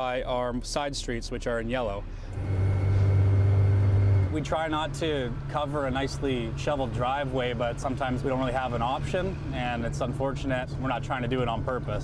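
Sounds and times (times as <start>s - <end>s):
truck engine rumbling: 0.0s - 12.0s.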